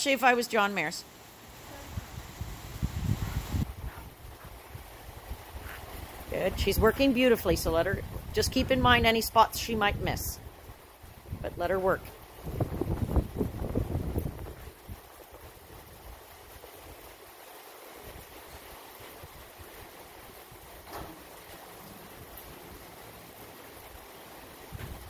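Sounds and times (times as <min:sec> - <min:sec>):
steady outdoor hiss: 0:00.0 - 0:25.0
wind buffeting microphone: 0:01.7 - 0:16.6, 0:24.7 - 0:25.0.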